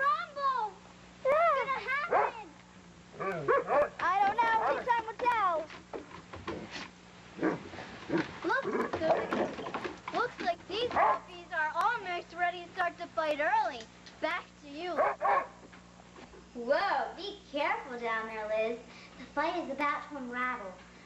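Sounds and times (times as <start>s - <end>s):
dogs barking and yipping: 1.9s - 2.5s, 3.2s - 5.2s, 10.8s - 11.3s, 15.0s - 15.6s.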